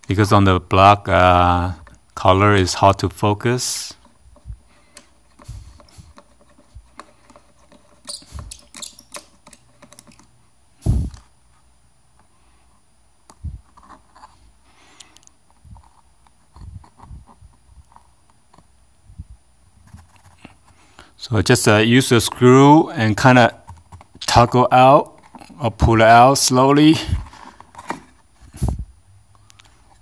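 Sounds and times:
hand clicking and tapping plastic: 0:04.0 - 0:10.3.

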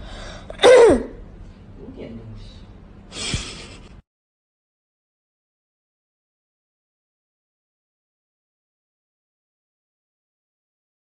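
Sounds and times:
low background noise: 0:00.0 - 0:04.0.

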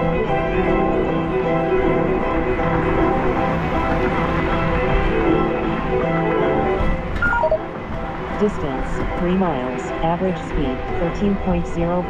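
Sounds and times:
descending electronic chime: 0:07.2 - 0:07.7.

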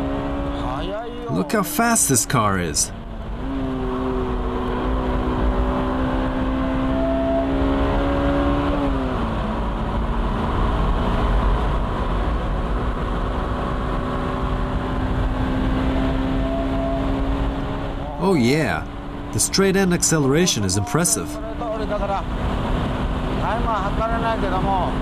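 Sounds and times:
car engine pulling at high revs: 0:00.0 - 0:01.3, 0:03.0 - 0:18.2.

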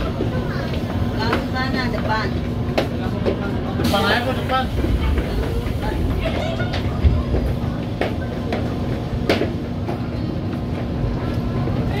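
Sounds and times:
people's voices: 0:00.0 - 0:12.0
train cabin rumble and hum: 0:00.0 - 0:12.0.

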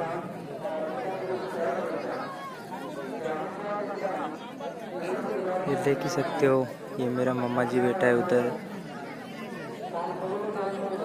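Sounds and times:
crowd of men talking: 0:00.0 - 0:11.0.

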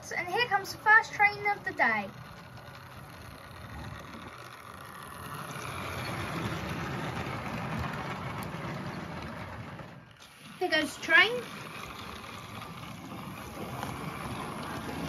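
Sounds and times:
model train running on track: 0:00.0 - 0:15.0.

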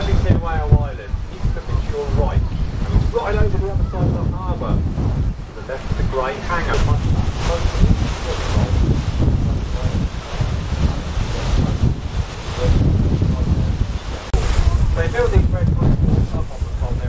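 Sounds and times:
choppy water washing: 0:00.0 - 0:17.0
gusty wind buffeting microphone: 0:00.0 - 0:17.0.

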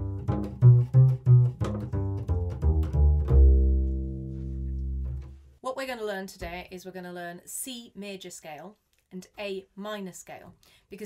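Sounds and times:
double bass plucked notes: 0:00.0 - 0:05.5.

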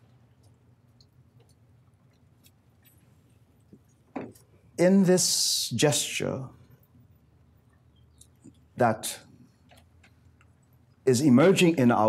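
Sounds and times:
man speaking: 0:04.8 - 0:06.6, 0:08.8 - 0:09.3, 0:11.1 - 0:12.0.

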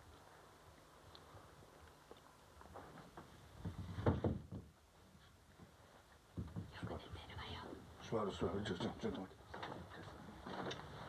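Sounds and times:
person whispering: 0:06.8 - 0:07.8.

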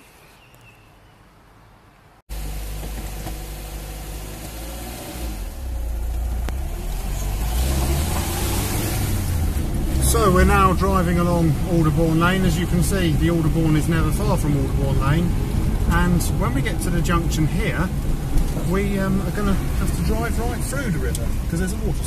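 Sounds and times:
road noise: 0:00.0 - 0:22.0
car engine from inside cabin: 0:02.3 - 0:22.0.

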